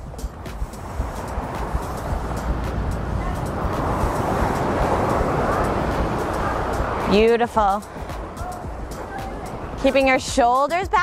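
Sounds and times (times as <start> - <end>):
ocean surf washing ashore: 0.0 - 11.0.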